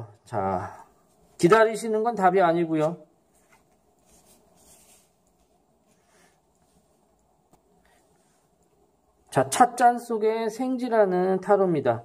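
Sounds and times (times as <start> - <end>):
card rustling on cloth: 2.8 - 7.0.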